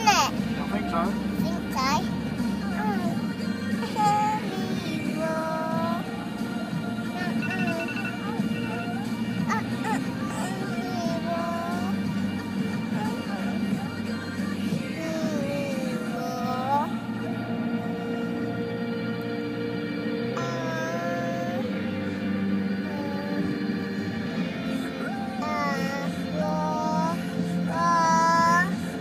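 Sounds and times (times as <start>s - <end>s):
child singing: 0.0s - 0.4s, 1.4s - 6.3s, 7.0s - 16.9s, 20.4s - 22.1s, 22.8s - 28.8s
pop song playing: 0.0s - 29.0s.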